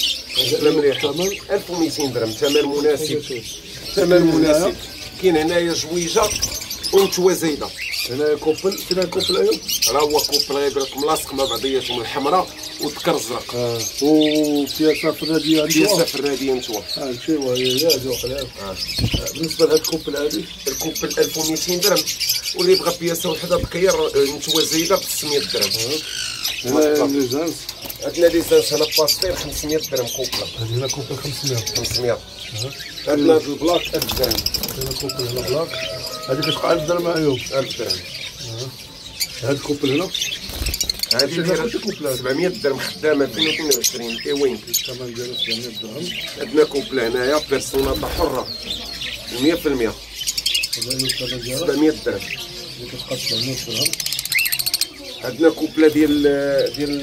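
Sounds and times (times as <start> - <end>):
caged birds chirping and squawking: 0.0 - 57.0.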